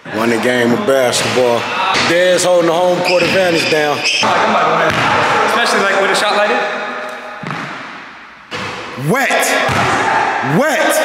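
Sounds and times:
basketball thud with echo: 4.8s - 5.3s, 7.4s - 9.0s, 9.6s - 10.2s.

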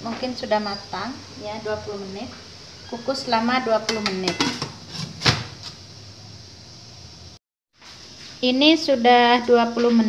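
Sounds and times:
low steady background noise: 0.0s - 10.0s
glass lid clinking on pot: 3.9s - 4.8s.

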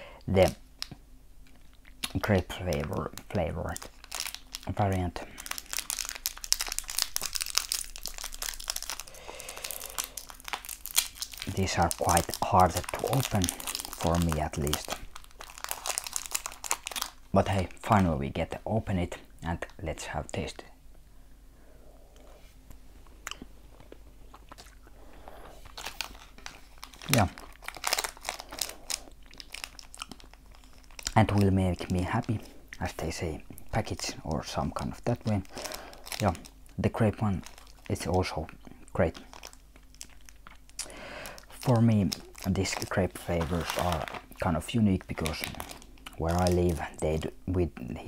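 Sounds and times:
candy wrapper crinkling: 0.3s - 18.7s, 23.3s - 48.0s
chewing candy: 23.2s - 25.0s.

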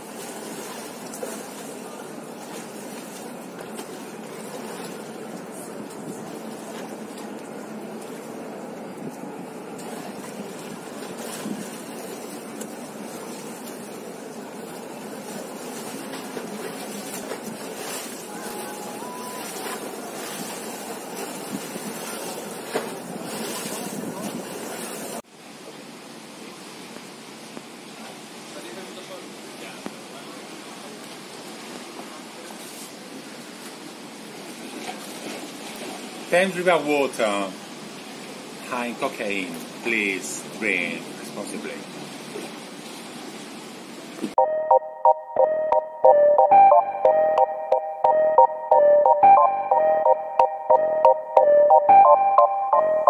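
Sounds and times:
water splashing over stone steps: 0.0s - 8.4s, 9.7s - 25.2s.

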